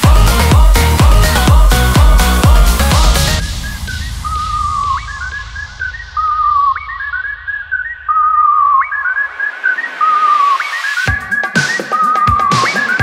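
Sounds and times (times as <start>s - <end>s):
sped-up electronic dance music: 0.0s - 13.0s
whistle-like lead melody: 0.0s - 13.0s.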